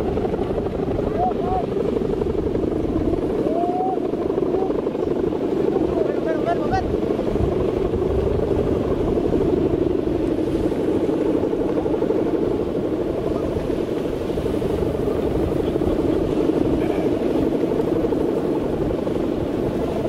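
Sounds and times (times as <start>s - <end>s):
kite hummer buzzing drone: 0.0s - 20.0s.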